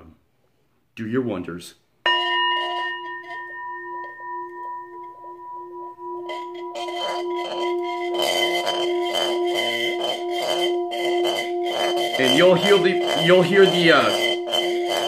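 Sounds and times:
singing bowl ringing tone: 2.1s - 15.0s
sphere rattling against metal bowl: 2.1s - 15.0s.

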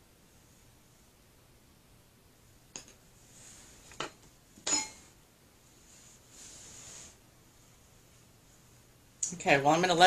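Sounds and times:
glass jar clink: 4.6s - 5.0s.

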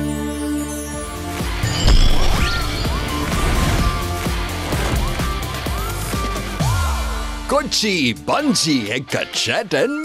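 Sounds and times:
upbeat theme jingle: 1.3s - 5.3s.

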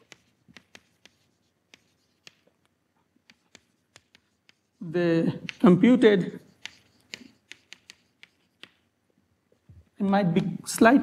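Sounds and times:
chalk writing on blackboard: 0.0s - 2.5s, 3.2s - 8.9s.

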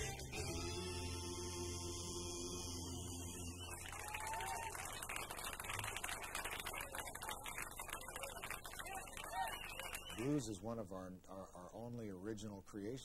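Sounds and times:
audience applauding: 3.6s - 10.3s.

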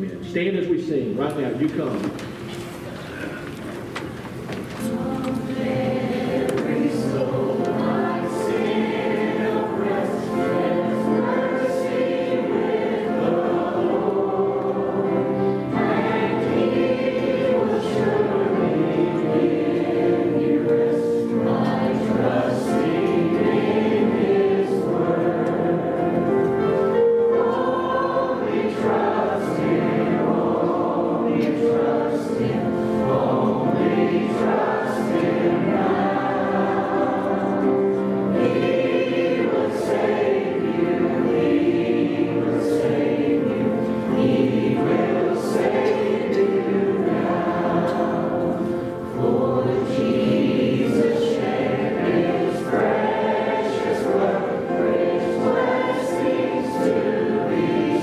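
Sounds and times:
congregation singing along: 1.4s - 58.0s
woman and man singing a hymn: 4.7s - 58.0s.

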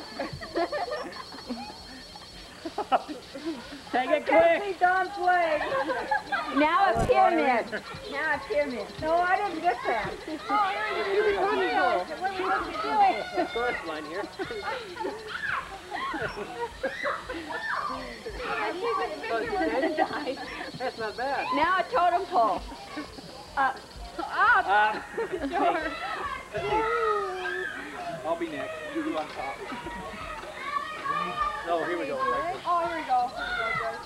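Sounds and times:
people laughing and calling out: 0.0s - 34.0s.

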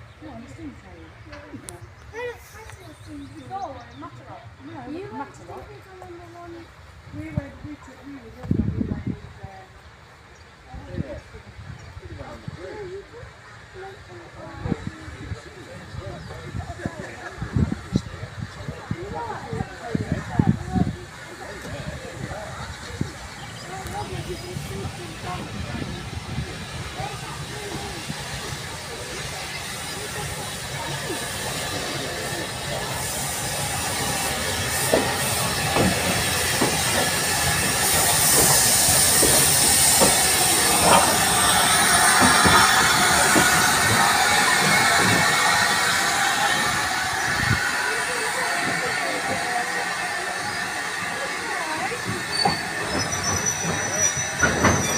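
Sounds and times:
steam locomotive moving: 0.0s - 54.9s
loud steam hiss: 8.3s - 54.9s
wheels squealing and clicking: 51.7s - 54.9s.

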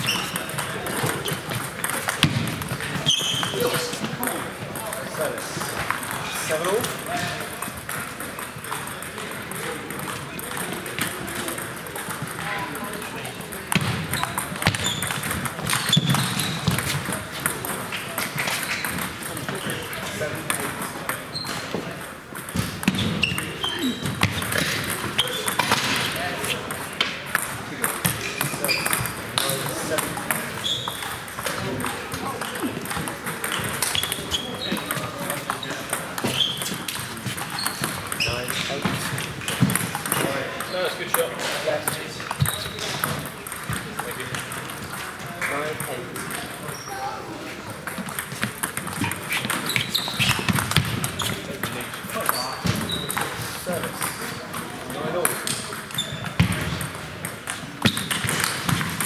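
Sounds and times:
players' voices: 0.0s - 59.0s
table tennis balls clicking: 0.0s - 59.0s.

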